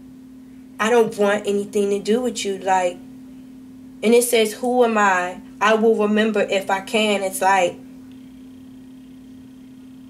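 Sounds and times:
faint high whine: 0.0s - 10.0s
steady low hum: 0.0s - 10.0s.

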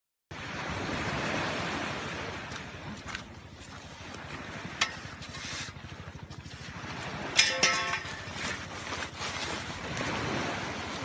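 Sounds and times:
surf: 0.3s - 11.0s
wind buffeting microphone: 0.4s - 11.0s.

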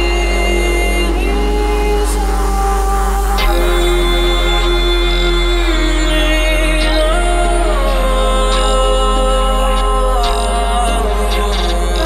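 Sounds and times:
deep bass: 0.0s - 12.0s
synthesizer chords: 0.0s - 12.0s.

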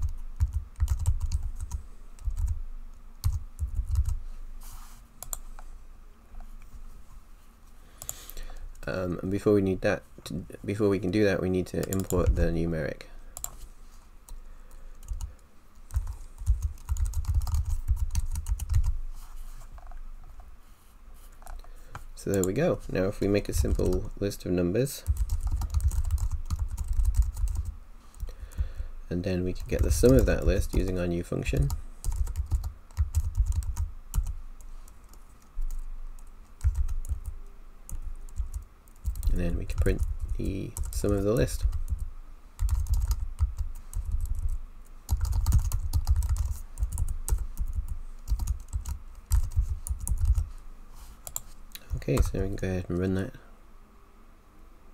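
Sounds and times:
typing on computer keyboard: 0.0s - 2.6s, 3.2s - 4.2s, 15.0s - 18.9s, 25.1s - 28.3s, 31.6s - 34.3s, 35.7s - 37.3s, 37.9s - 41.1s, 42.6s - 50.4s.

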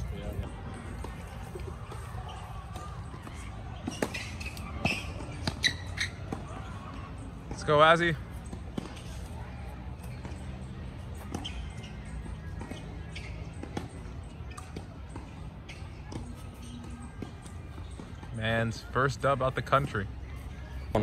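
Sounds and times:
faint distant voices: 0.0s - 21.0s.

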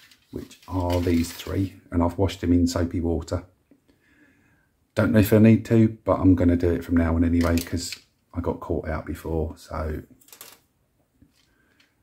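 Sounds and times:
plastic sprue frames rattling: 0.0s - 1.6s.

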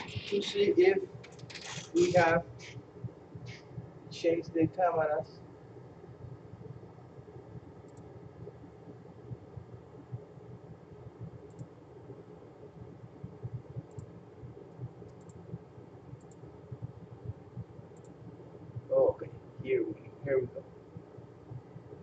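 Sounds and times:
low room noise: 0.0s - 22.0s
faint small clicks: 7.8s - 8.1s, 11.4s - 11.7s, 14.7s - 15.4s, 16.2s - 16.5s, 18.0s - 18.2s.

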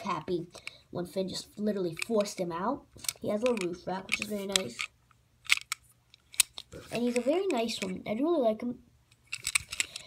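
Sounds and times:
person speaking: 0.0s - 5.0s, 6.6s - 8.9s.

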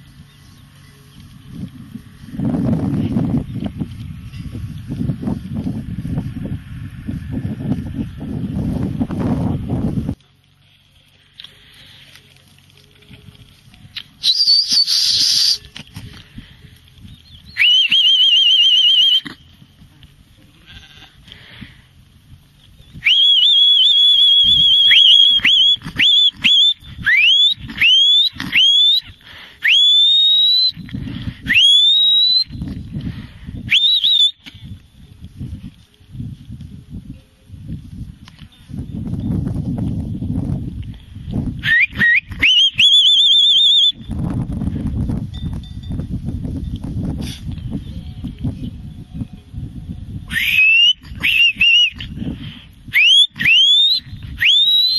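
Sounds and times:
low uneven rumble: 0.0s - 14.2s, 15.6s - 17.6s, 19.4s - 23.1s
herding whistle: 14.2s - 15.7s, 17.4s - 19.4s, 23.0s - 32.6s, 33.6s - 34.5s, 41.6s - 44.1s, 50.2s - 52.1s, 52.9s - 54.9s.

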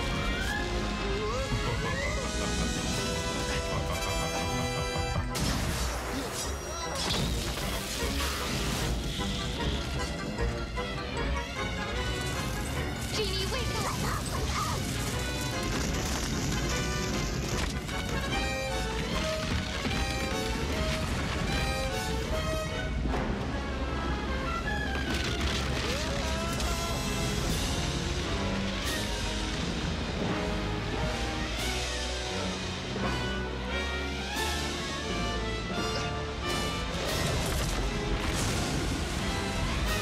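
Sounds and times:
dramatic orchestral music: 0.0s - 40.0s.

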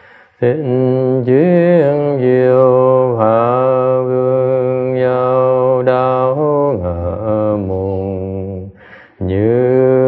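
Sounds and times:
person chanting held syllables: 0.3s - 10.0s.

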